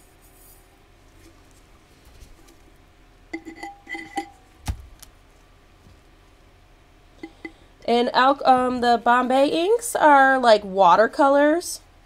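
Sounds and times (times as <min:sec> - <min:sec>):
sharp thump: 0:04.6 - 0:05.0.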